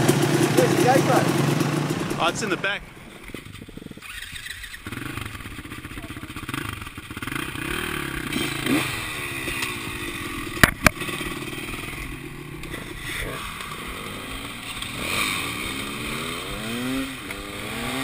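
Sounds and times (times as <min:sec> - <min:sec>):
dirt bike engines idling: 0:00.0 - 0:18.0.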